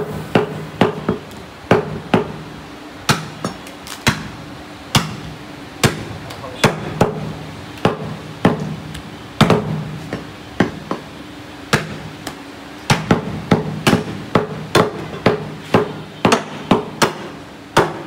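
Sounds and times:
cleavers chopping on wooden blocks: 0.3s - 2.4s, 3.1s - 4.4s, 5.0s - 11.1s, 11.7s - 18.0s.

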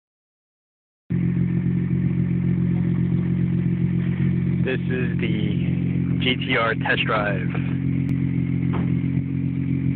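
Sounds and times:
car engine idling: 1.1s - 9.9s.

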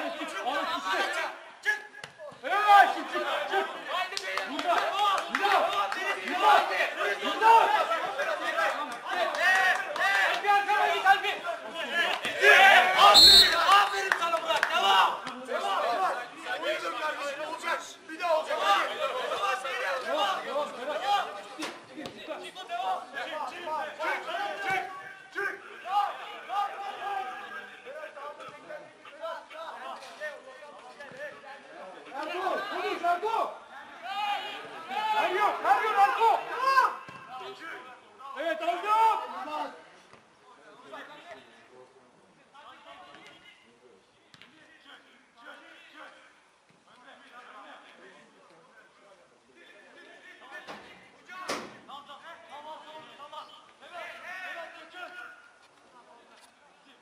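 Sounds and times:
voices shouting: 2.4s - 16.0s.

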